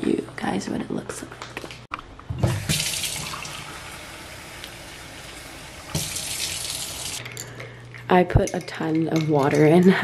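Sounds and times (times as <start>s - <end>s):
faucet filling a glass: 2.6s - 4.2s.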